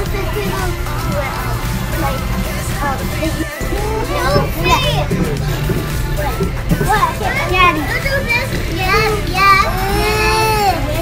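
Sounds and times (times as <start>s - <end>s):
young child talking: 4.0s - 5.6s.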